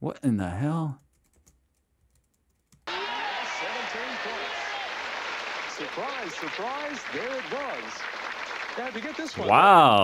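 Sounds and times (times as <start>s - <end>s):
studio audience applauding: 2.9s - 10.0s
voices: 2.9s - 10.0s.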